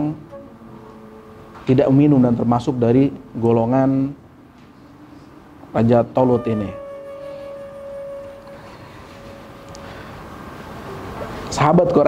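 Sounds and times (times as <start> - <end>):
steady tone: 0.0 - 11.5
low hiss: 0.0 - 12.0.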